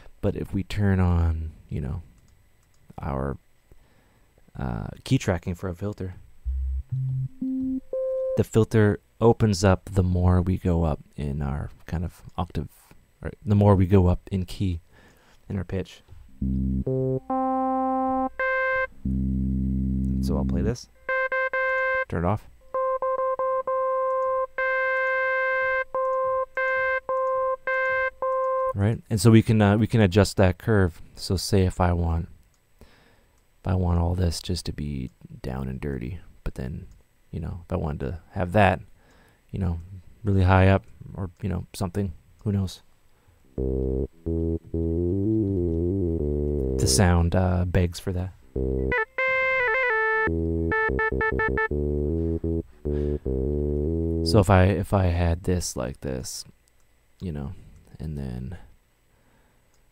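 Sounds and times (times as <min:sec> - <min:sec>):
synth notes with filter sweeps: 0:06.5 - 0:08.4, 0:16.4 - 0:28.8, 0:43.5 - 0:47.2, 0:48.5 - 0:54.7
synthesizer high note stabs: 0:06.5 - 0:08.4, 0:43.6 - 0:47.2, 0:48.6 - 0:54.4.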